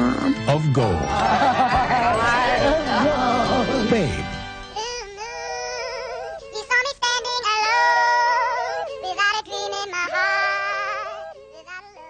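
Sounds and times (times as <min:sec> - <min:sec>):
high voices singing with vibrato: 0:04.8 - 0:12.0.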